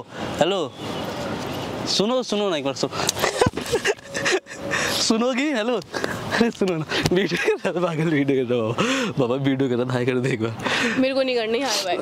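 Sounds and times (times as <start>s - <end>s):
woman sobbing: 3.2s - 5.0s.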